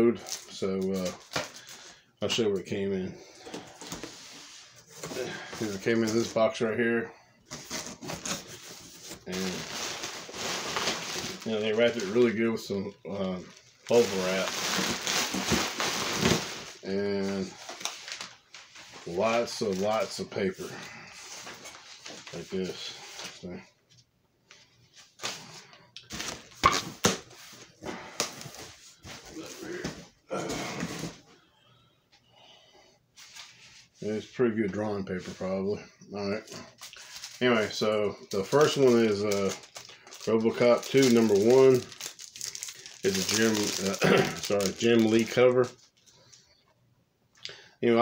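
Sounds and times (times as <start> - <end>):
packing paper rustling: 0.0 - 2.7, 3.4 - 6.6, 7.5 - 23.5, 25.0 - 31.2, 36.6 - 46.5.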